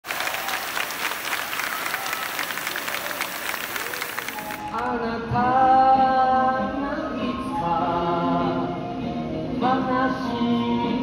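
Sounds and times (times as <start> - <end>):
crowd applauding: 0.0 - 4.8
faint voices: 0.1 - 4.8.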